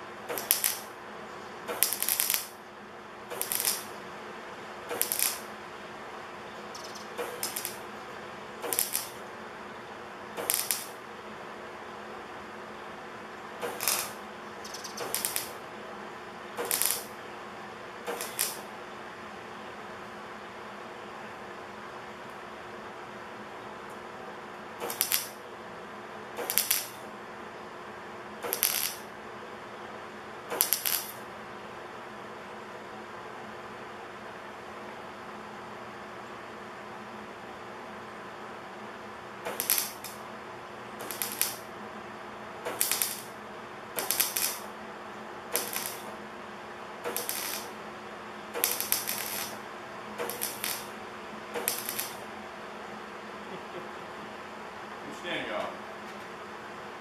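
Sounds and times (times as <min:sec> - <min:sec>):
welder low hum: 0:00.0 - 0:02.7, 0:03.3 - 0:19.2, 0:24.8 - 0:25.4, 0:26.4 - 0:27.1, 0:28.4 - 0:29.2, 0:30.5 - 0:31.3, 0:38.6 - 0:55.6
welding arc crackling: 0:00.3 - 0:01.0, 0:01.7 - 0:02.6, 0:03.3 - 0:04.0, 0:04.9 - 0:05.6, 0:06.7 - 0:08.0, 0:08.6 - 0:09.3, 0:10.4 - 0:11.0, 0:13.6 - 0:15.7, 0:16.6 - 0:17.2, 0:18.0 - 0:18.7, 0:24.8 - 0:25.4, 0:26.4 - 0:27.0, 0:28.4 - 0:29.1, 0:30.5 - 0:31.3, 0:39.4 - 0:40.3, 0:41.0 - 0:41.8, 0:42.6 - 0:44.8, 0:45.4 - 0:46.3, 0:47.0 - 0:47.9, 0:48.5 - 0:52.3.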